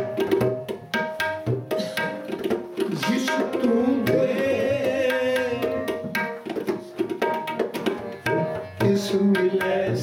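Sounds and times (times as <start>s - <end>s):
tabla drumming: 0.0s - 10.0s.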